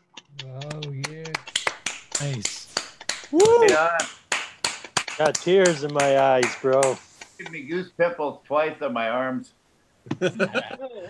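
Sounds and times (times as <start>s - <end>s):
scattered applause: 0.2s - 7.0s.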